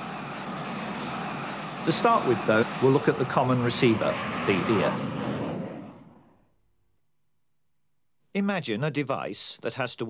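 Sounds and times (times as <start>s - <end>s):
jet airliner flying overhead: 0.0s - 6.4s.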